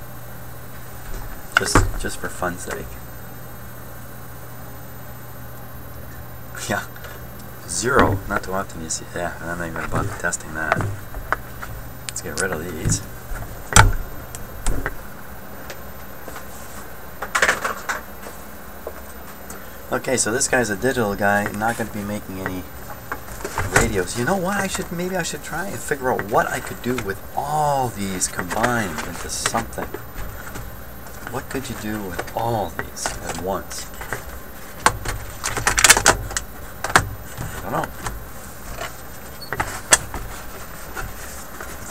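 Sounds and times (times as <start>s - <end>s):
paper and cardboard rustling: 7.8s - 15.1s, 15.7s - 41.9s.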